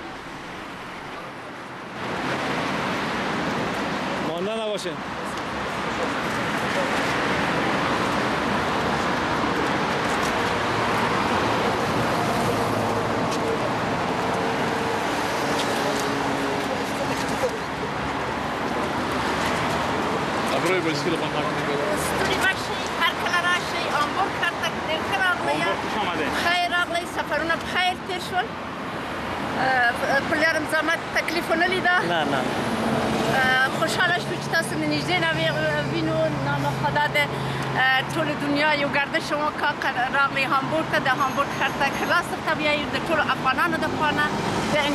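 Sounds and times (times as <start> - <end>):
road traffic rushing past: 0.0 - 44.9
voices of outdoor group: 0.0 - 44.9.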